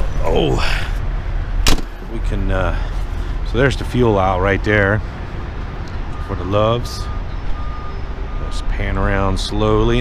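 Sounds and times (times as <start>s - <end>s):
reversing alarm beeping: 6.1s - 10.0s.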